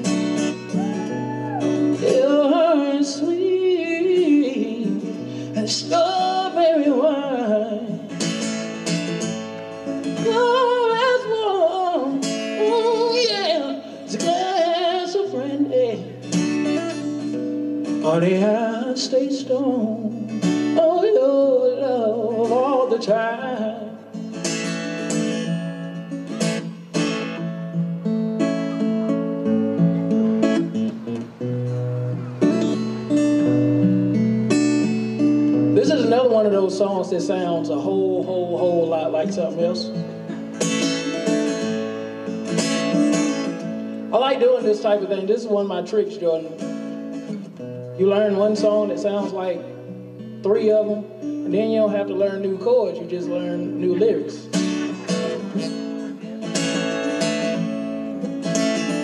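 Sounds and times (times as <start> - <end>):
acoustic guitar strumming: 0.0 - 59.0
man singing into microphone: 0.8 - 8.1, 10.2 - 16.2, 18.0 - 24.0, 35.8 - 40.0, 44.1 - 46.6, 48.0 - 49.7, 50.4 - 54.6.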